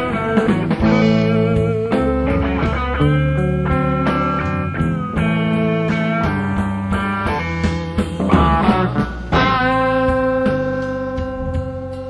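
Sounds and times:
band sustaining long note: 0:00.7 - 0:03.5.

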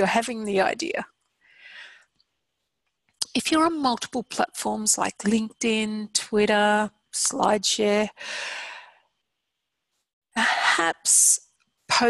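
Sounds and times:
woman breathing: 0:01.4 - 0:02.1, 0:08.2 - 0:09.1.

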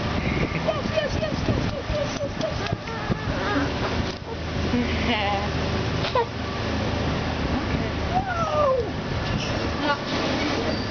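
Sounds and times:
boat engine hum: 0:00.0 - 0:10.9.

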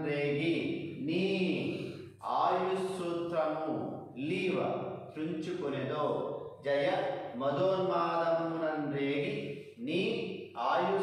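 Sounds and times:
man chanting verse: 0:00.0 - 0:11.0.

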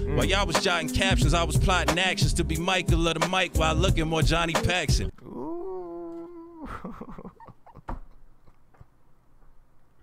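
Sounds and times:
man's drawn-out ooh: 0:05.1 - 0:07.2.

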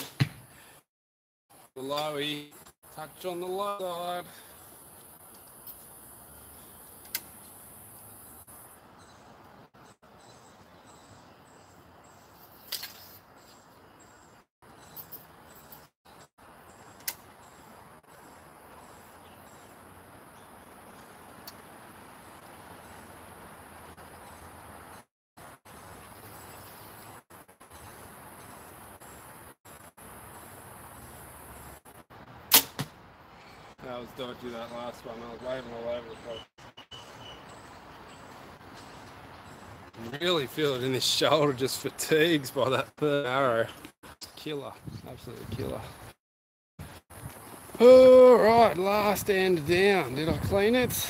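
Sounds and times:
faint outdoor hiss: 0:01.5 - 0:46.1, 0:46.8 - 0:51.0
bow string release crack: 0:07.0 - 0:07.4, 0:12.6 - 0:13.2, 0:17.0 - 0:17.2, 0:32.5 - 0:33.0
light clicks of bow: 0:07.0 - 0:07.4
arrow knock: 0:32.5 - 0:33.0.

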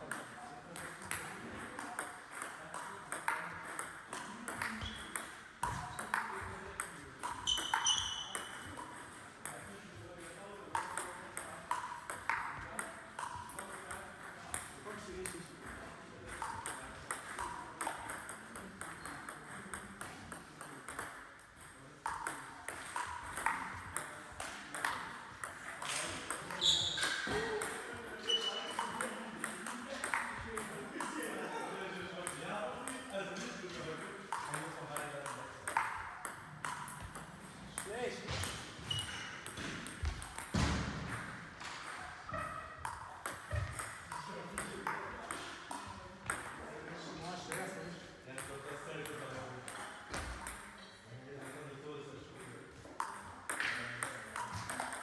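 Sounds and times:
table tennis ball clicks: 0:16.4 - 0:27.8, 0:28.4 - 0:31.1, 0:53.0 - 0:55.0.

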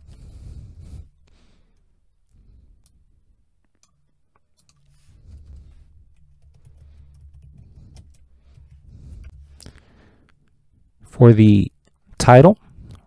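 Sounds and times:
faint keyboard typing: 0:03.6 - 0:10.6.

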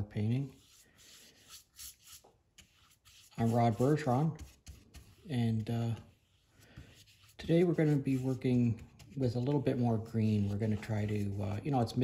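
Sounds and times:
faint soft rubbing: 0:00.0 - 0:12.0.

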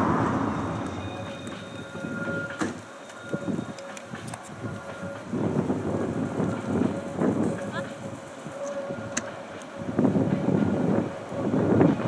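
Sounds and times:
distant steam locomotive exhaust beats: 0:00.0 - 0:12.0.

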